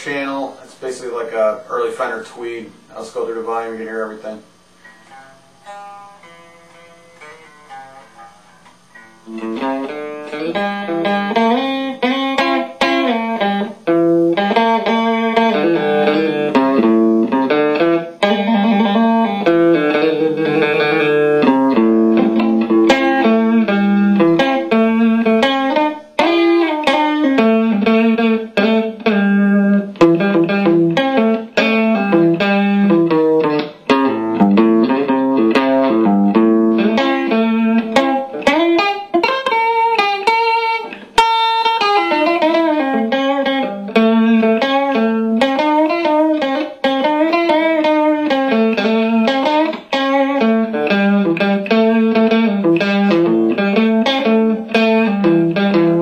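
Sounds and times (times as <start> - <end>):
electric guitar playing: 0.0 - 56.0.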